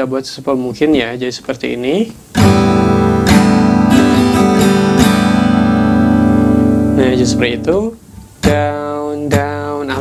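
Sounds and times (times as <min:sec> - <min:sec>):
acoustic guitar strumming: 0:02.2 - 0:10.0.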